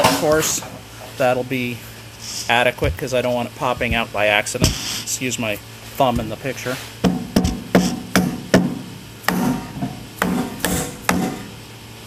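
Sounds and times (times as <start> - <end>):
hammer tapping metal plate: 7.0 - 11.5.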